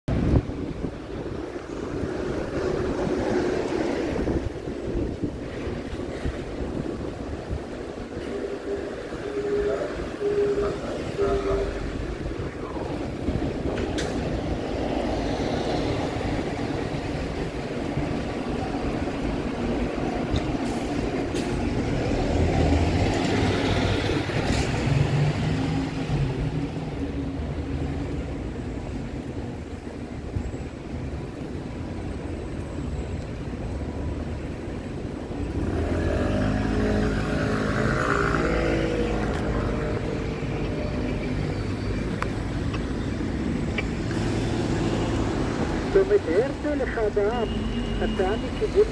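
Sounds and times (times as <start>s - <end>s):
street traffic: 0.0s - 48.9s
diesel bus engines: 0.1s - 48.9s.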